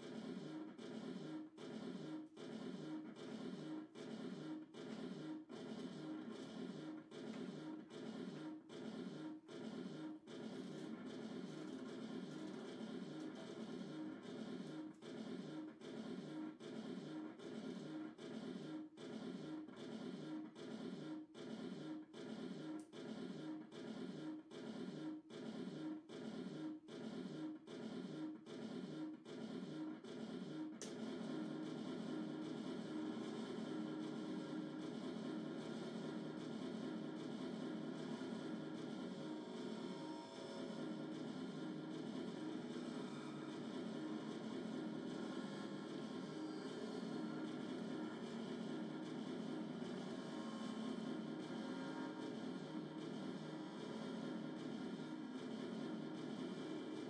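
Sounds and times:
distorted electronic drone: 10.0s - 14.8s, 28.9s - 57.0s.

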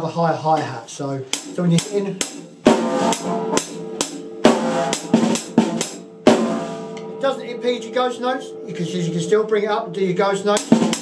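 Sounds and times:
cymbal-like wash: 2.7s - 11.0s.

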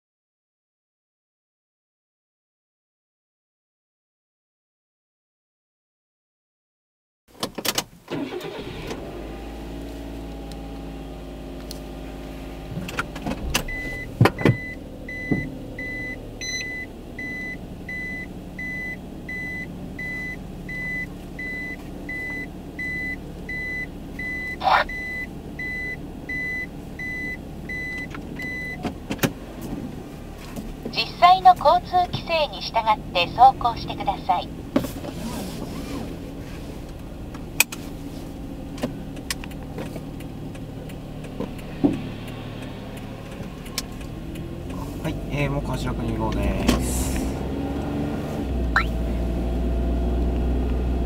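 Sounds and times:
car engine starting and idling: 7.3s - 51.0s
high warning beep: 13.7s - 28.8s, 48.8s - 49.0s
sharp control clicks: 38.8s - 44.8s.

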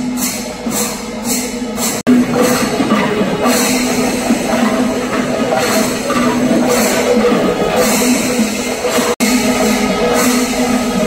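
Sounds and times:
cymbal-like clash: 0.0s - 11.0s
steady held note: 0.0s - 11.0s
loud dense drumming: 0.6s - 11.0s.

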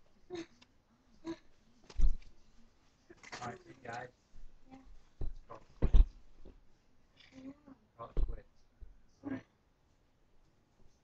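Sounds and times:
dull thumps: 5.2s - 6.6s, 8.2s - 8.9s.

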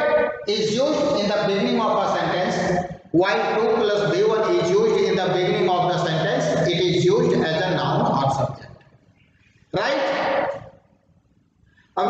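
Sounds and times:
man speaking: 0.0s - 8.8s, 9.7s - 10.7s.

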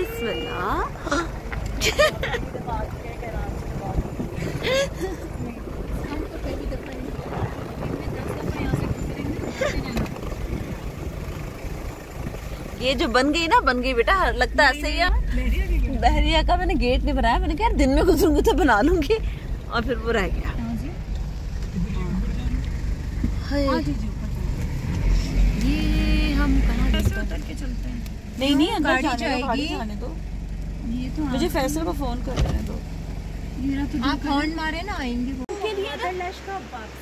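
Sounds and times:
woman speaking: 0.0s - 1.3s, 5.0s - 10.1s, 12.8s - 21.0s, 23.4s - 24.5s, 25.6s - 30.2s
road and engine rumble in cabin: 0.0s - 37.0s.

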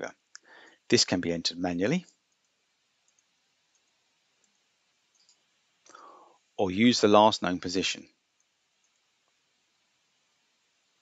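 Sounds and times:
computer mouse clicks: 3.1s - 5.4s.

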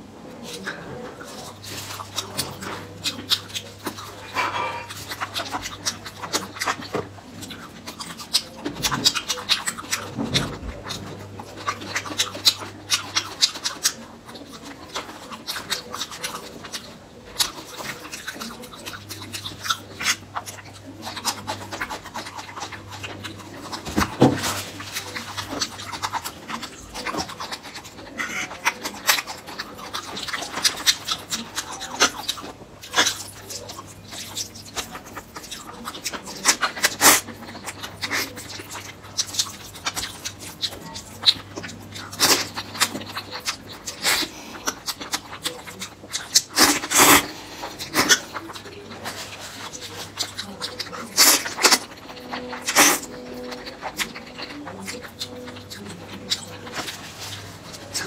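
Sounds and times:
mouth chewing and smacking: 0.0s - 58.0s.

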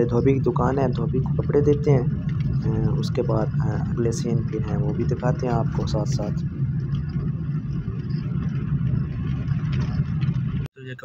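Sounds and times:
car engine: 0.0s - 10.7s
road noise: 0.0s - 10.7s.

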